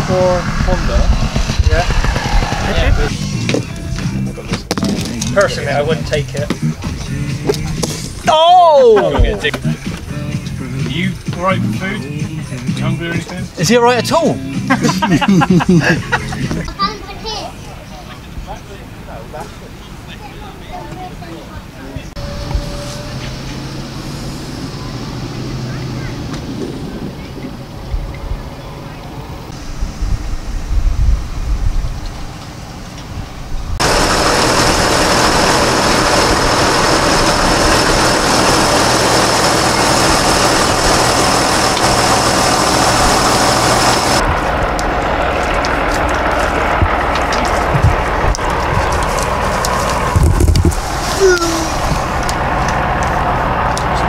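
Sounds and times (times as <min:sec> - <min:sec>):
steady high whine: 0:00.0 - 0:08.3, 0:29.4 - 0:54.0
tractor diesel engine running: 0:00.0 - 0:54.0.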